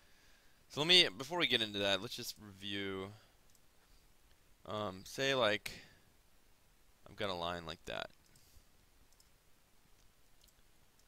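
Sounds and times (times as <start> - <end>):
computer mouse clicks: 8.1 - 8.5, 9.1 - 9.4, 10.0 - 11.0.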